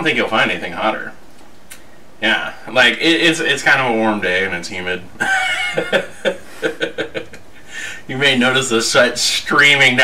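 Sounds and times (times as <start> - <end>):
man chuckling: 5.2 - 8.0.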